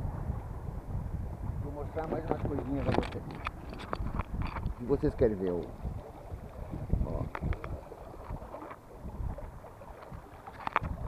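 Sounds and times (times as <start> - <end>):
wind rushing over microphone: 0.0 - 11.0
water washing along a hull: 1.3 - 11.0.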